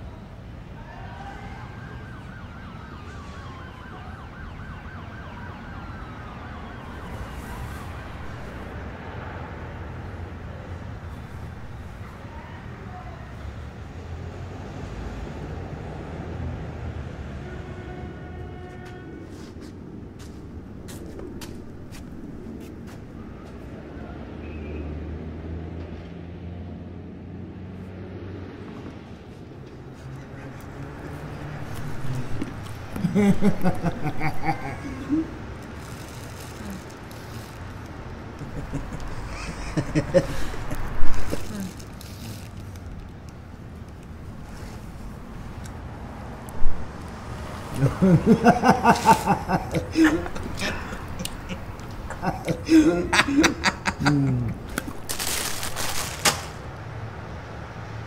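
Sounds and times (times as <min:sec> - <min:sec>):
low street rumble: 0:00.0 - 0:58.0
emergency vehicle siren yelping: 0:01.0 - 0:08.7.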